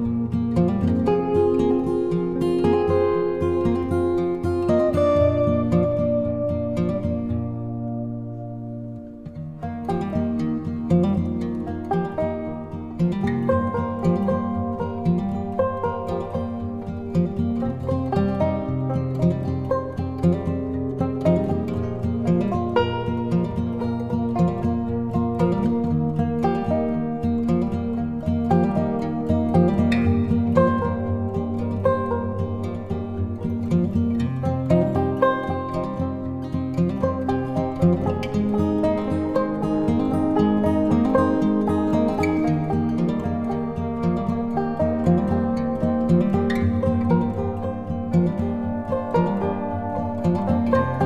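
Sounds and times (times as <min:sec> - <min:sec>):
plucked string instrumental music: 0:00.0 - 0:51.0.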